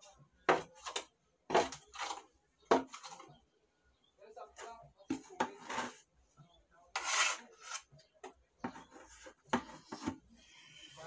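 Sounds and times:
putty knife scraping a wall: 0.5s - 3.3s, 6.9s - 7.9s.

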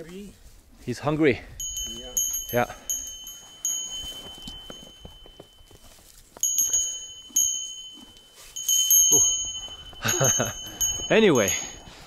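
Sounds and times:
small metal bell ringing: 1.6s - 12.0s
hay being chewed: 2.2s - 11.1s.

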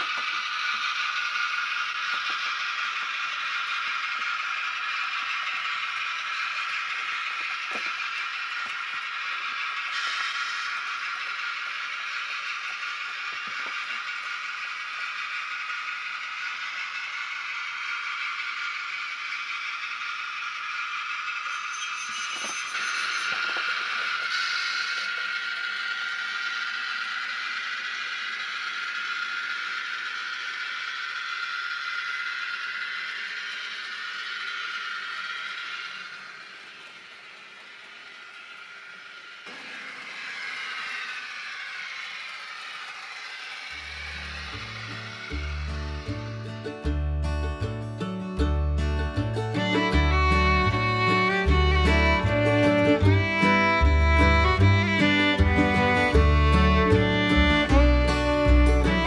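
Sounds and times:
electric motors whirring: 0.0s - 48.2s, 49.1s - 59.0s
wheels clattering over track: 0.0s - 48.2s
acoustic guitar music: 46.3s - 59.0s.

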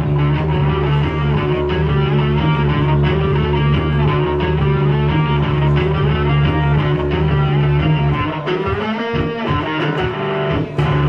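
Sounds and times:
electric bass guitar: 0.0s - 11.0s.

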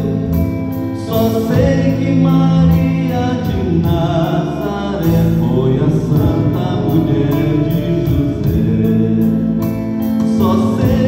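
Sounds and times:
backing music: 0.0s - 11.0s
man singing into a microphone: 0.0s - 11.0s.

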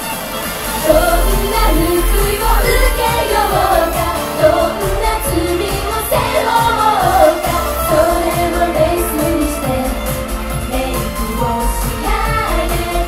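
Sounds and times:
pop music with steady beat: 0.0s - 13.0s
women singing pop: 0.8s - 13.0s.

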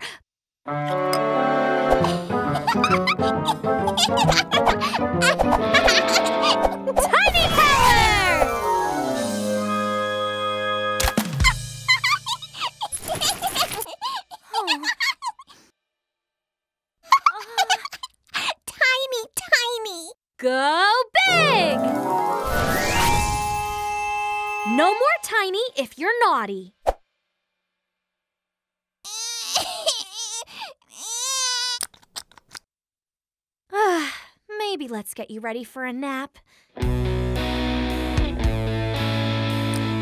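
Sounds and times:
cartoon toddler crying: 2.5s - 8.4s, 29.0s - 31.9s
cartoon characters squeaky voices: 6.3s - 8.6s.

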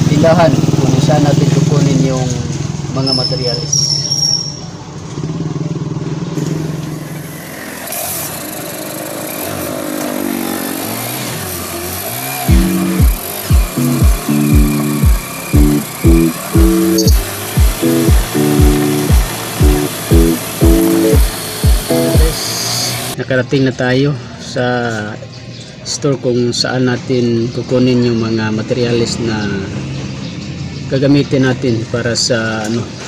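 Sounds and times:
motorcycle engine running: 0.0s - 3.0s, 4.7s - 23.2s
music with steady beat: 12.5s - 22.5s.

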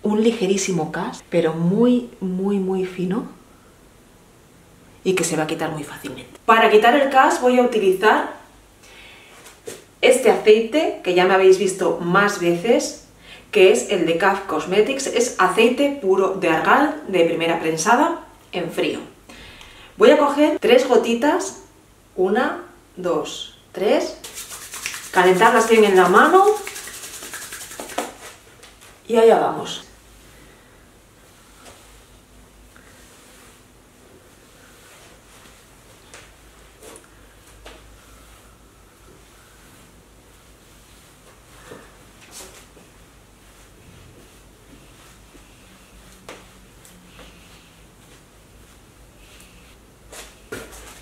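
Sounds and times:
oiled palms rubbing together: 24.2s - 29.0s.

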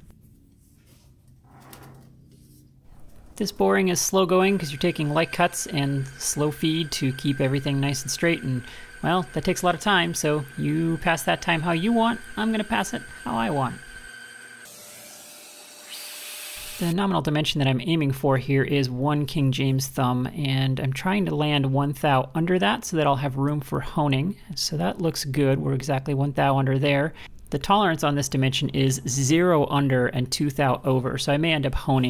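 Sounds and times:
handheld vacuum rushing hiss: 4.2s - 14.7s.

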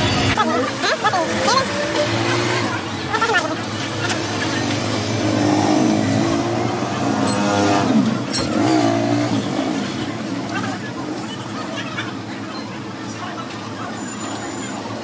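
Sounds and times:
vehicle engines passing by: 0.0s - 15.0s.

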